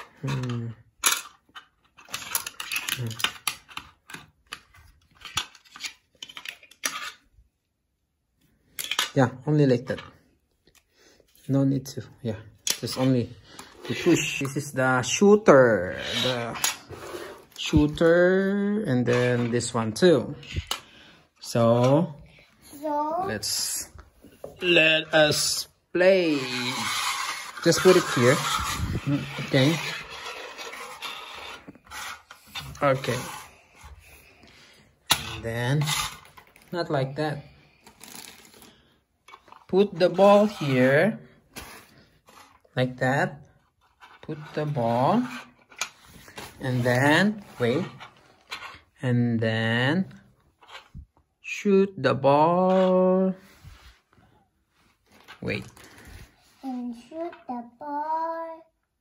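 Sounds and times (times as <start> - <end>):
plastic toy rubbing and scraping: 0.0 - 7.3, 12.7 - 21.0, 22.7 - 49.0, 50.4 - 51.2
plastic toy parts clicking: 0.3 - 7.2.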